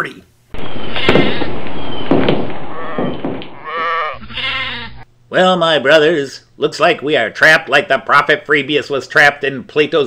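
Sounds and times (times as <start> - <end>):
rough noise with knocks: 0.6 - 3.8
sheep bleating: 0.8 - 1.6, 2.7 - 5.1.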